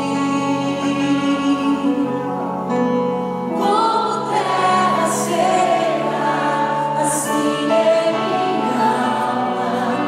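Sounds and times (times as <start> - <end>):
woman singing into a microphone: 0.0 - 2.4, 3.5 - 10.0.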